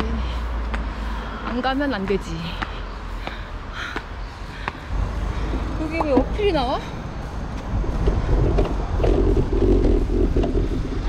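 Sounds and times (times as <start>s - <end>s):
wind rumbling on microphone: 3.8s - 11.0s
steady droning tone: 4.4s - 11.0s.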